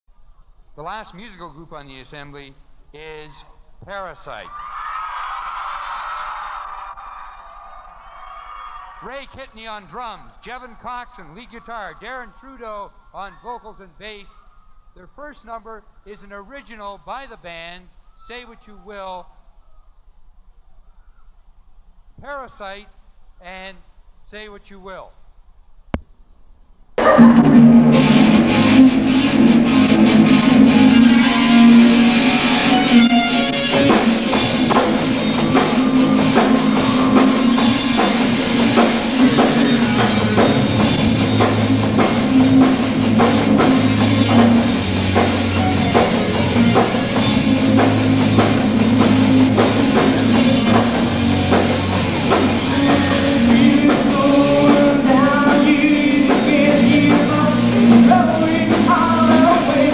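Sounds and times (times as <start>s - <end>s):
audience cheering and clapping: 4.3s - 9.4s, 27.0s - 52.7s
bass notes: 27.0s - 59.9s
electric guitar: 27.0s - 59.9s
rock band playing: 27.0s - 59.9s.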